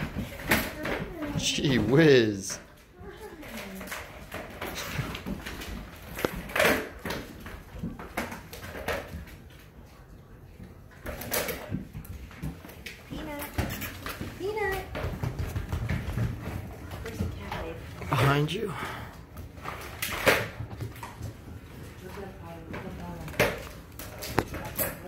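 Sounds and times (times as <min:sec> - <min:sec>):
paws and toys knocking on floor: 0:11.0 - 0:17.8.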